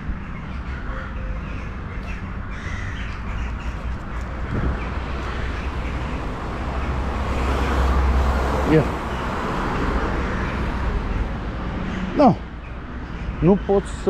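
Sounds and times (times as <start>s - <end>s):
street traffic rumble: 0.0s - 14.0s
crows cawing: 0.6s - 13.4s.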